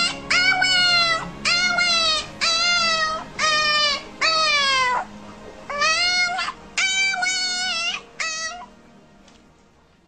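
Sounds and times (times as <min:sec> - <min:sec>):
kitten meowing: 0:00.0 - 0:05.1, 0:05.7 - 0:08.7.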